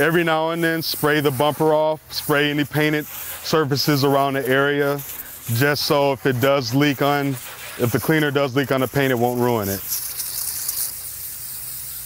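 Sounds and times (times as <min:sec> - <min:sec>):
water spraying on metal fins: 0:00.0 - 0:12.0.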